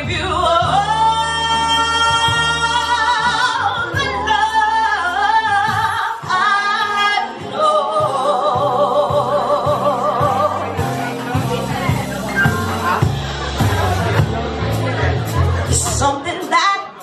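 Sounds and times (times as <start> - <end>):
woman singing into microphone: 0.0 - 11.0, 15.8 - 17.0.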